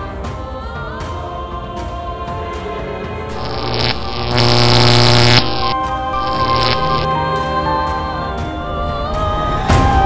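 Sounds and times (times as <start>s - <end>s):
background music: 0.0s - 4.9s, 5.8s - 10.0s
electric zap buzz: 3.4s - 7.1s.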